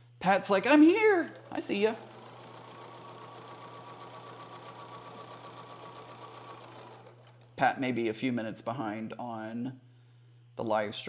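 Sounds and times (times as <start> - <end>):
sewing machine running: 0.6 - 7.5.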